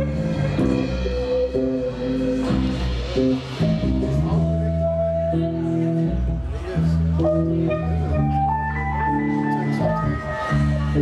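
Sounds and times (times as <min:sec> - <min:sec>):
bass line: 0:00.0 - 0:11.0
electric guitar chords: 0:00.0 - 0:11.0.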